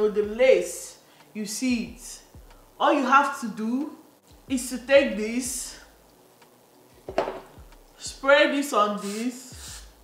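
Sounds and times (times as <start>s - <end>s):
aerosol can and comb clattering: 7.0s - 7.5s.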